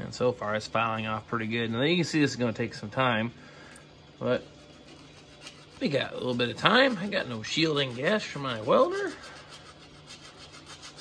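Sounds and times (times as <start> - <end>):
hand sanding rasping strokes: 4.2 - 11.0.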